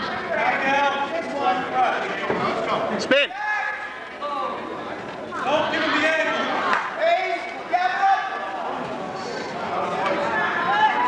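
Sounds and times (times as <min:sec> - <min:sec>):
spectators and coaches calling out: 0:00.0 - 0:11.0.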